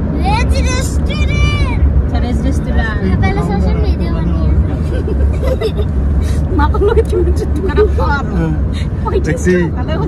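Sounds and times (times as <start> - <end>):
car rumble from inside cabin: 0.0 - 10.0
voices: 0.2 - 10.0.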